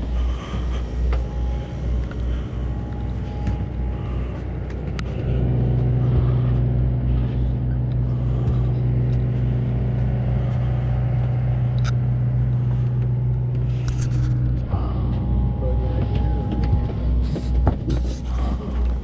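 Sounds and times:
boat engine drone: 0:00.0 - 0:19.0
deep hum: 0:00.0 - 0:19.0.

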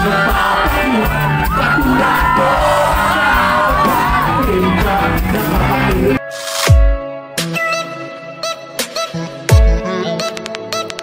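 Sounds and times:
fans shouting and cheering: 0:00.0 - 0:06.2
person singing: 0:00.0 - 0:06.2, 0:07.4 - 0:11.0
live rock band playing: 0:00.0 - 0:07.7.

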